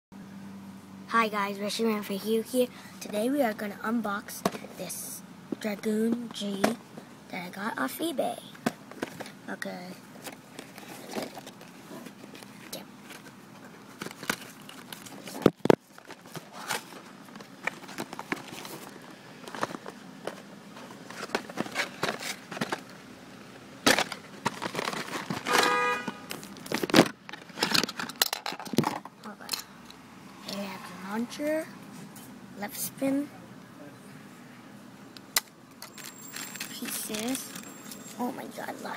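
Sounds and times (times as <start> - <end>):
packaging rustling and crinkling: 10.2 - 23.0, 23.9 - 28.8.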